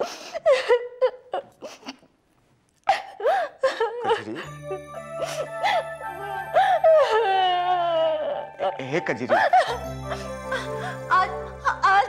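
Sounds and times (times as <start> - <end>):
woman wailing: 3.9 - 8.8
background music: 4.0 - 12.0.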